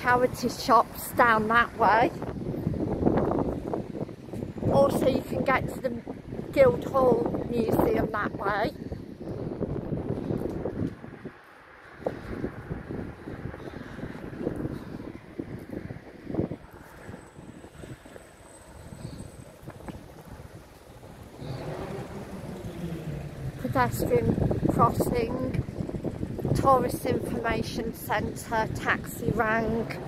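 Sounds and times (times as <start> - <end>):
street traffic passing: 0.0 - 30.0
wind buffeting microphone: 0.0 - 30.0.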